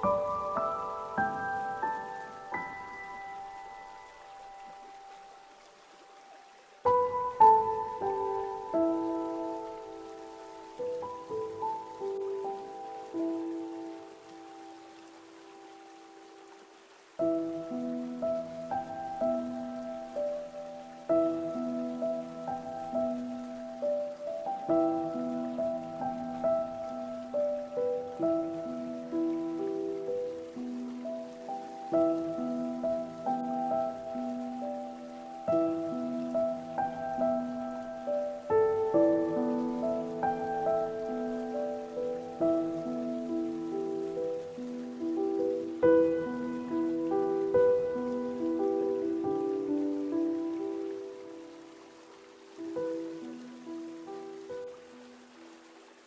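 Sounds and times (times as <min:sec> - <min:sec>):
solo piano melody: 0:00.0 - 0:56.0
stream water flowing: 0:00.0 - 0:56.0.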